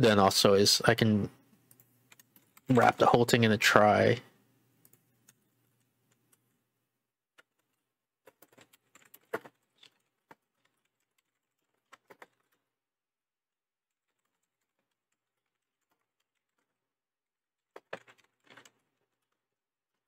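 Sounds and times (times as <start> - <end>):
keyboard typing: 1.5 - 3.2, 4.8 - 6.6, 7.3 - 12.7, 13.9 - 16.9, 17.6 - 20.0.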